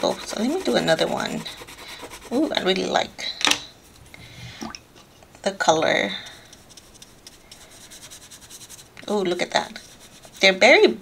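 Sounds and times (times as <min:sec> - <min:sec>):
brush scratching on paper: 0:00.0 - 0:02.9, 0:05.9 - 0:11.0.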